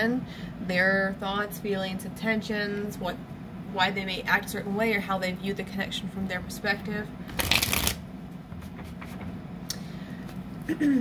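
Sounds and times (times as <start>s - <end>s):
cards being shuffled: 7.3s - 8.0s.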